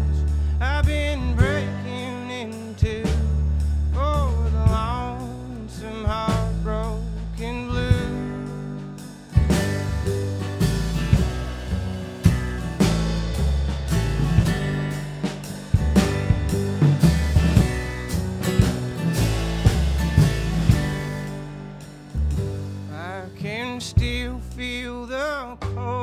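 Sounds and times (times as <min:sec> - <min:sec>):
acoustic guitar strumming: 0:00.0 - 0:26.0
drum kit steady beat: 0:00.0 - 0:26.0
upright bass walking notes: 0:00.0 - 0:26.0.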